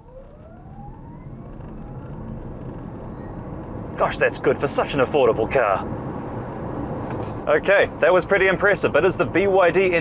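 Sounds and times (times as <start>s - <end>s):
tyre and road noise: 0.0s - 10.0s.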